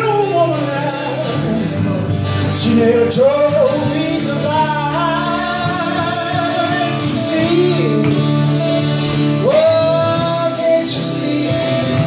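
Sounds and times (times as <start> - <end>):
man singing: 0.0 - 12.0
strummed acoustic guitars: 0.0 - 12.0.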